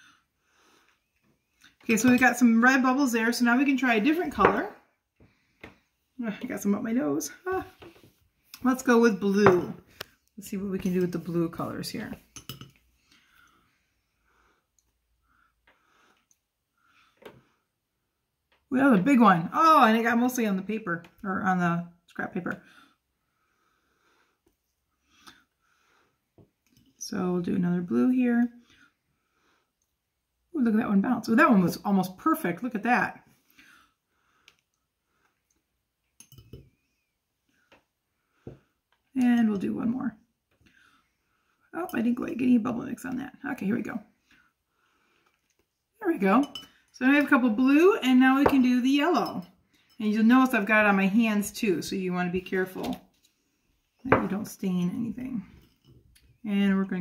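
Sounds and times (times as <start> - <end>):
bubble wand clinking on glass bowl: 46.3 - 46.8.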